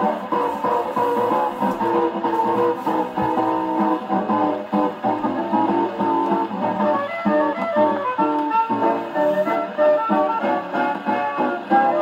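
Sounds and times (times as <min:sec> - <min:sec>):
dance band jazz record: 0:00.0 - 0:12.0.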